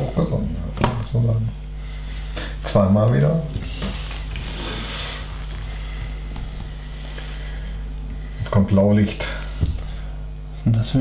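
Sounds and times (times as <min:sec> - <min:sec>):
low electrical hum: 0:00.0 - 0:11.0
paper page turning: 0:04.0 - 0:05.8.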